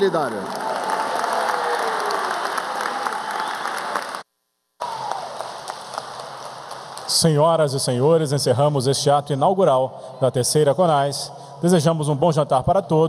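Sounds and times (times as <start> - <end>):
audience applauding: 0.0 - 4.2, 4.8 - 7.4.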